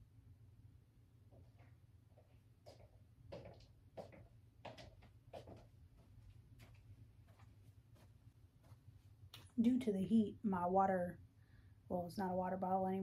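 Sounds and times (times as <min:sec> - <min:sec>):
low room hum: 0:00.0 - 0:13.0
faint footsteps: 0:01.3 - 0:09.6.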